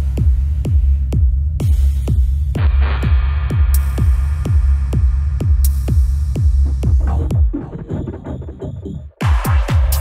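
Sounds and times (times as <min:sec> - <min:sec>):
deep kick drum: 0:00.0 - 0:08.3, 0:09.2 - 0:10.0
steady low bass: 0:00.0 - 0:10.0.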